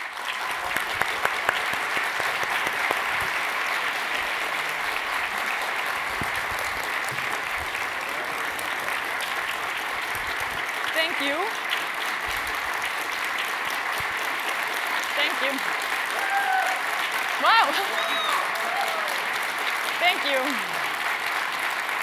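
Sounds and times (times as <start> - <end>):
audience applauding: 0.0 - 22.0.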